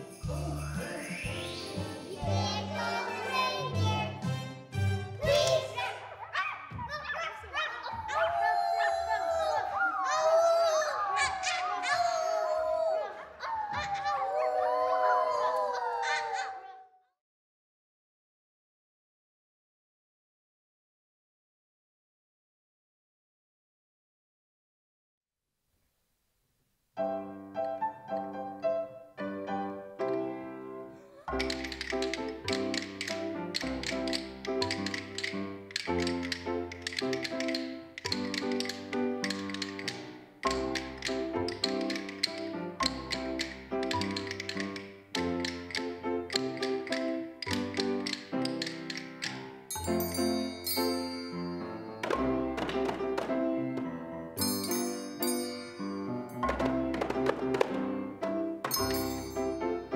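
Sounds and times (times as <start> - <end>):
instrumental music: 0.0 - 5.9, 27.0 - 59.9
children singing long notes: 0.3 - 4.2, 8.1 - 16.8
rhythm sticks clicking: 31.3 - 50.9.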